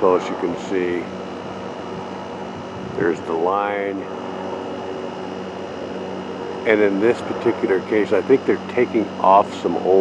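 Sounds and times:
distant helicopter drone: 0:00.0 - 0:10.0.

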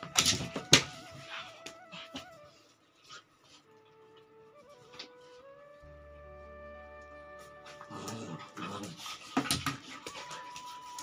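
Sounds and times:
soft background melody: 0:00.0 - 0:11.0
dogs scuffling and rustling: 0:07.4 - 0:11.0.

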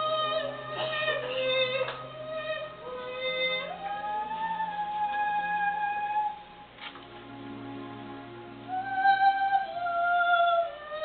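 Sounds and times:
woman singing soprano: 0:00.0 - 0:06.6, 0:08.6 - 0:11.0.

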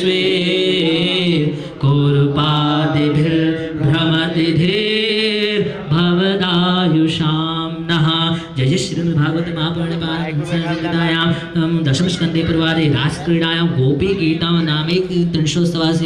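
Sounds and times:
man chanting melodically: 0:00.0 - 0:16.0.

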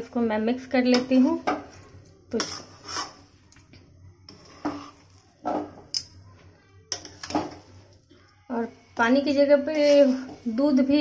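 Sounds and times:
spoon scraping metal pan: 0:02.3 - 0:03.5, 0:04.3 - 0:06.2, 0:06.9 - 0:07.9, 0:09.0 - 0:11.0.

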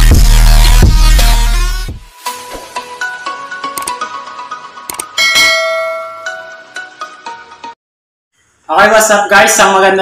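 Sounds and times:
electronic music with steady beat: 0:00.0 - 0:02.5
notification bell ding: 0:05.1 - 0:06.8.

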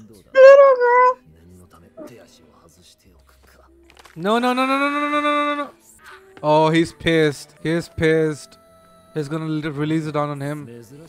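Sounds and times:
loud high-pitched vocal cry: 0:00.4 - 0:01.2.

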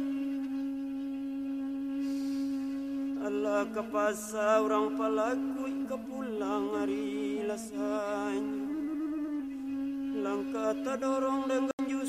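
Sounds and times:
bamboo flute long note: 0:00.0 - 0:12.0
soft breathy hiss: 0:02.0 - 0:03.1.

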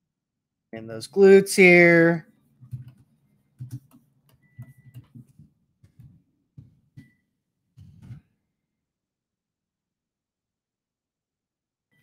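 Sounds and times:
faint clicks and taps: 0:02.6 - 0:07.2.

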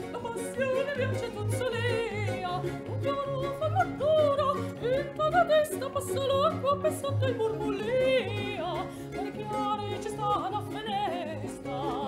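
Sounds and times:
mandolins violins and harpsichord: 0:00.0 - 0:12.0
soprano singing: 0:00.0 - 0:12.0.

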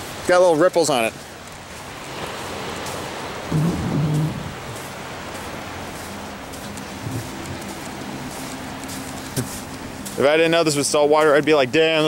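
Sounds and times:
surf on beach: 0:00.0 - 0:12.0
wind: 0:00.0 - 0:12.0.

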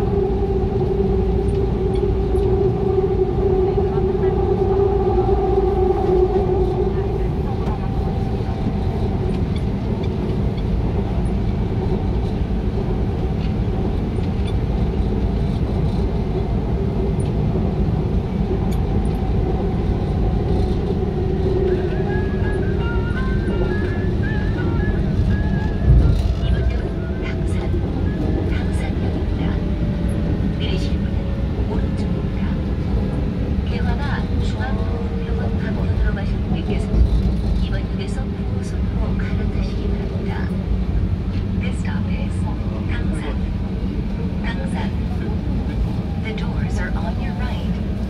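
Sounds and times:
subway train wheels rumbling: 0:00.0 - 0:48.0.

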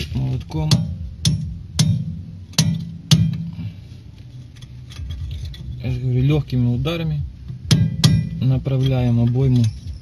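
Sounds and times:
hammer tapping metal bearing: 0:00.4 - 0:03.6, 0:07.4 - 0:10.0.

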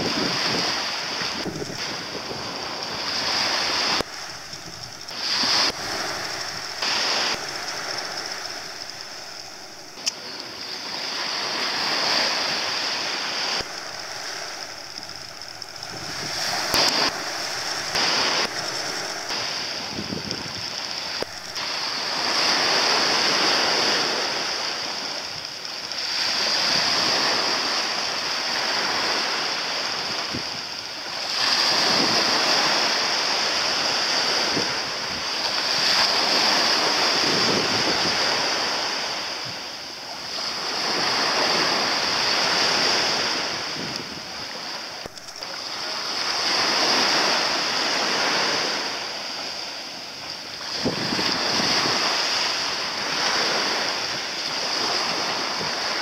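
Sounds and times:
small waves washing on beach: 0:00.0 - 0:56.0
steady high hiss: 0:00.0 - 0:56.0.

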